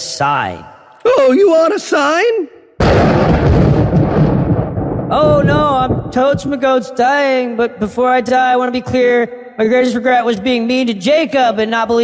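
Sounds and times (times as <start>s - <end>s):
explosion boom with deep rumble: 2.8s - 6.6s.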